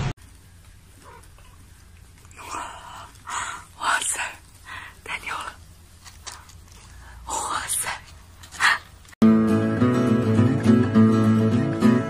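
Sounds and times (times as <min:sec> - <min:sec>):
person whispering: 0:02.3 - 0:05.6, 0:07.0 - 0:08.9.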